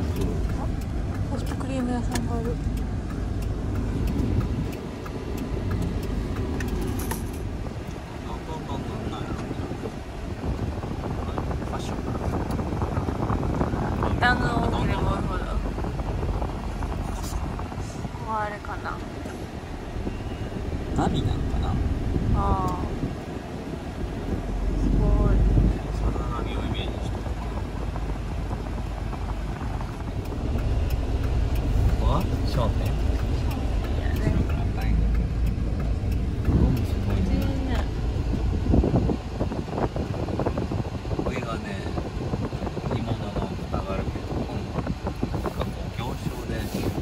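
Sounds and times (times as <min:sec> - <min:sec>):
van engine and road rumble: 0:00.0 - 0:47.0.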